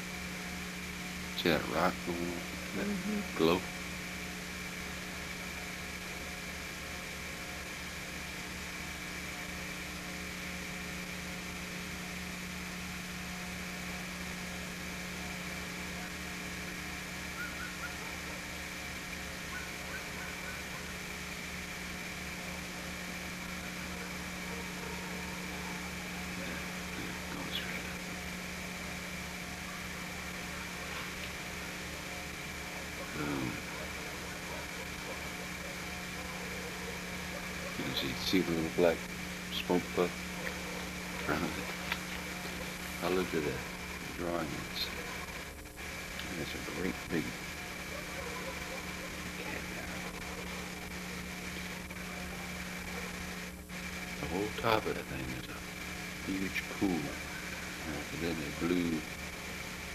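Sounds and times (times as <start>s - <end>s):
high whine: 0.0s - 59.9s
steady hum: 0.0s - 59.9s.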